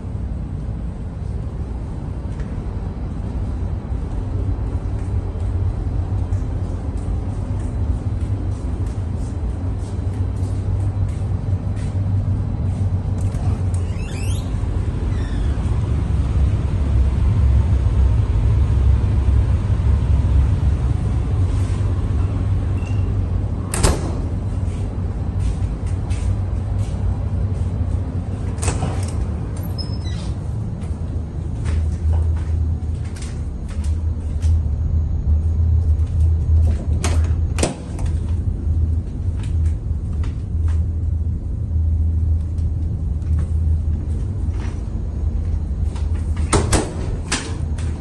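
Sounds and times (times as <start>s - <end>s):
ship machinery hum: 0.0s - 48.0s
faint footsteps: 4.0s - 13.7s, 24.5s - 28.5s, 30.2s - 34.7s.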